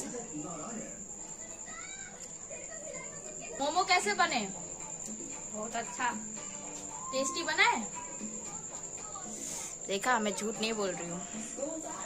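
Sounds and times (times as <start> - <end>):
woman speaking: 2.5 - 4.6, 5.2 - 6.3, 7.0 - 7.9, 9.8 - 12.0.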